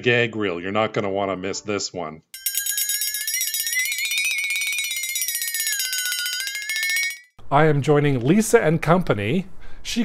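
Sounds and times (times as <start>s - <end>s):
electric alarm bell ringing: 2.4s - 7.4s.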